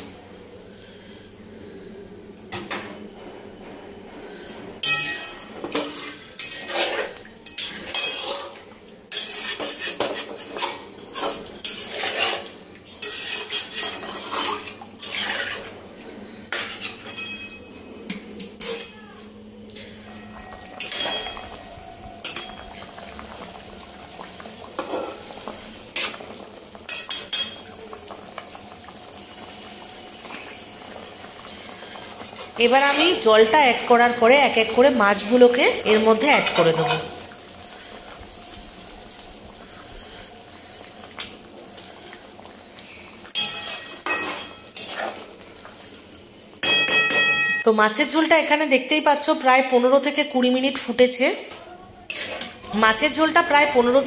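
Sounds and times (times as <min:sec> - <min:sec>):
metal spatula scraping metal pan: 0:04.8 - 0:18.9, 0:19.8 - 0:21.5, 0:43.3 - 0:45.3, 0:52.1 - 0:52.6.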